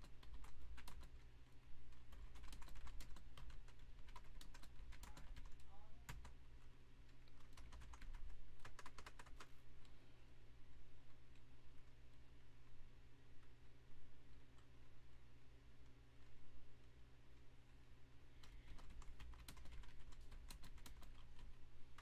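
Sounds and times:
typing on computer keyboard: 0:00.0 - 0:01.3, 0:01.9 - 0:06.4, 0:07.1 - 0:09.5, 0:18.4 - 0:22.0
steady low hum: 0:00.0 - 0:22.0.

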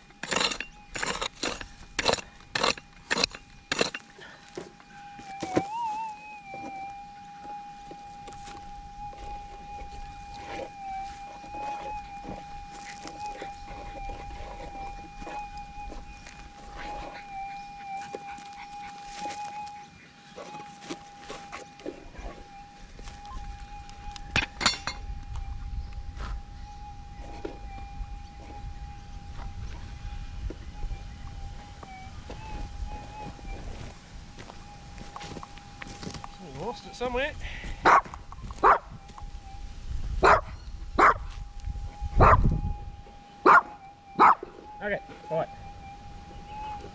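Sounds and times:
metal detector threshold hum: 0:00.0 - 0:46.9.

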